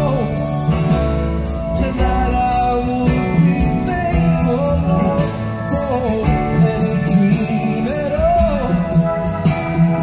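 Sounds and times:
bass: 0:00.0 - 0:10.0
drums: 0:00.0 - 0:10.0
electric guitar: 0:00.0 - 0:10.0
man singing lead: 0:00.0 - 0:10.0.

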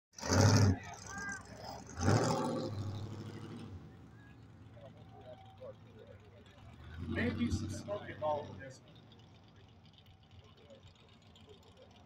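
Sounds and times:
car engine revving hard: 0:00.2 - 0:04.0, 0:06.7 - 0:08.8.

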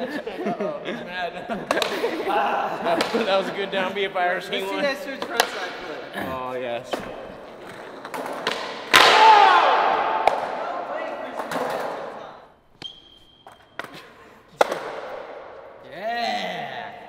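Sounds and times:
loud skateboard slap: 0:07.7 - 0:12.2, 0:14.6 - 0:15.5.

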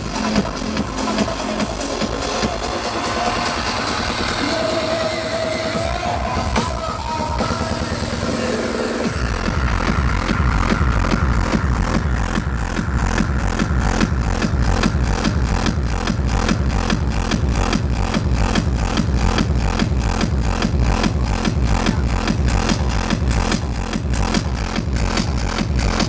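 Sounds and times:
loud electronic dance music: 0:00.0 - 0:26.0.

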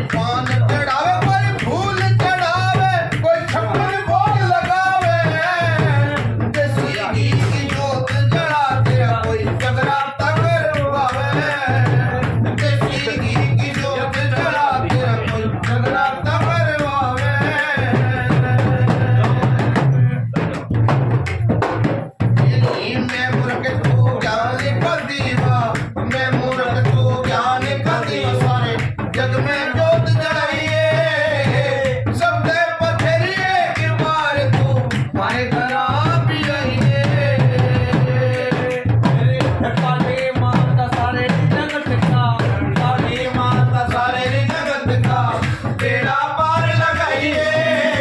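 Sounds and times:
drum beaten in fast rhythm: 0:00.0 - 0:48.0.

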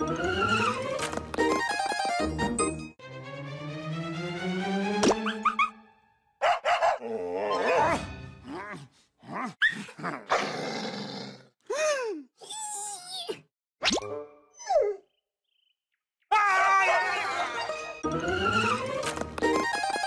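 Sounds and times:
dog growling and barking: 0:06.4 - 0:08.0
squeaky vocal noises: 0:07.2 - 0:10.6.

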